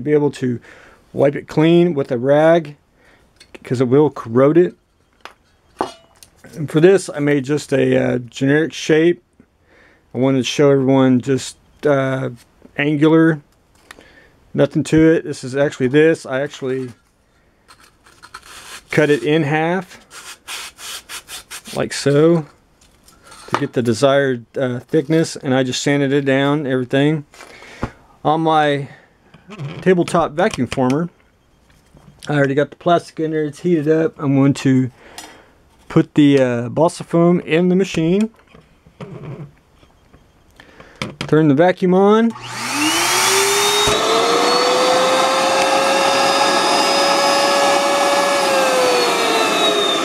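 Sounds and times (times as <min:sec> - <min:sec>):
saw scraping strokes: 0:17.8 - 0:21.8, 0:42.4 - 0:50.0.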